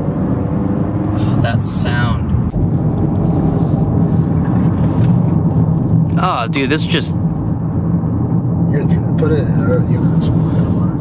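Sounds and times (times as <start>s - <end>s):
car engine drone from cabin: 0.0s - 11.0s.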